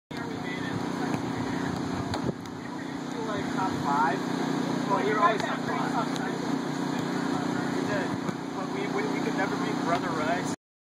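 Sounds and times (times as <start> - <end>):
voices: 0.1 - 10.6.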